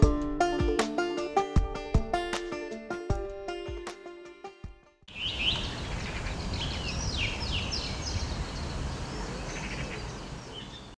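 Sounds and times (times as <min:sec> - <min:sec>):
small birds singing: 0:05.1 - 0:11.0.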